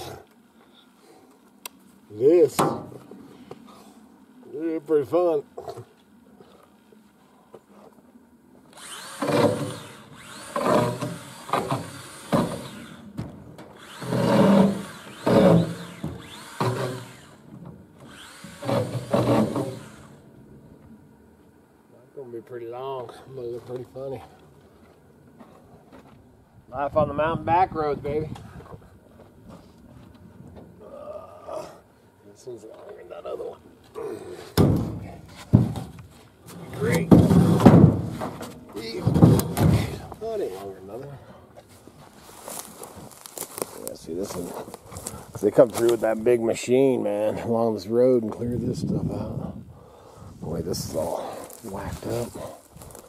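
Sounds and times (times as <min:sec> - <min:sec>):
hand tool rasping wood: 0:08.8 - 0:13.0, 0:13.8 - 0:17.4, 0:18.0 - 0:20.1
heavy wooden thuds: 0:34.5 - 0:36.2, 0:36.9 - 0:40.2.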